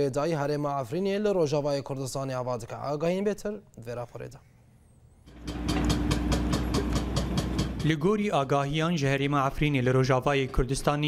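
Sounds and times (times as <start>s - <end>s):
heavy engine rumbling: 5.3s - 8.0s
rapid mechanical clatter: 5.3s - 8.2s.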